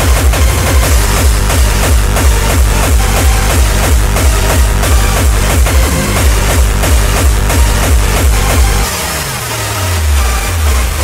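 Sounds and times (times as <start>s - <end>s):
fast kick drum: 0.0s - 8.9s
deep bass tone sliding down: 0.0s - 11.0s
high synth noise: 0.0s - 11.0s.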